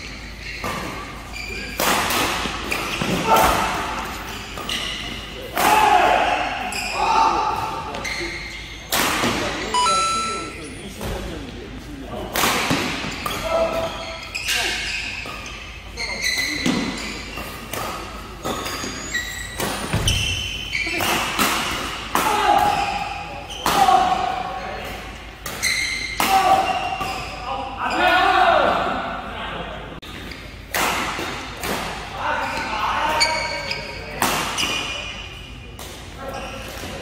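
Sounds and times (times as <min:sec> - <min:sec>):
court shoes squeaking: 0:00.0 - 0:05.5, 0:06.6 - 0:11.4, 0:13.0 - 0:24.0, 0:24.6 - 0:28.1, 0:30.0 - 0:30.7, 0:32.4 - 0:37.0.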